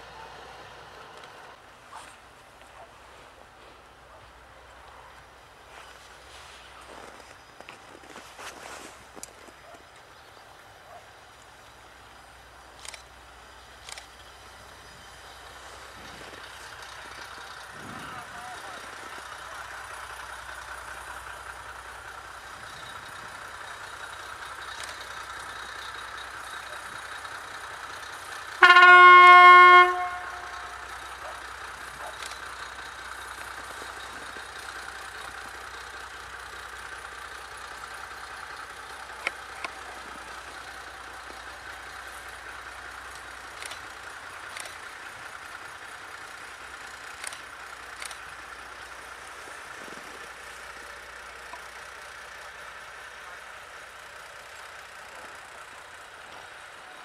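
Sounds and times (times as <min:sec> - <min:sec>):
train running noise: 0:00.0 - 0:57.0
locomotive horn blast: 0:28.5 - 0:31.1.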